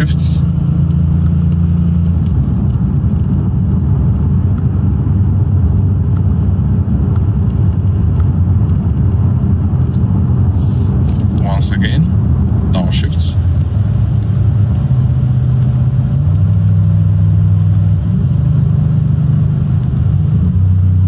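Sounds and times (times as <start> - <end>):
car engine droning inside cabin: 0.0 - 21.0.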